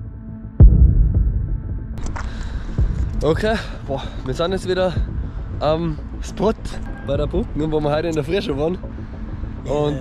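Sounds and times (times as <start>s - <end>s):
deep bass impact hit: 0.6s - 2.1s.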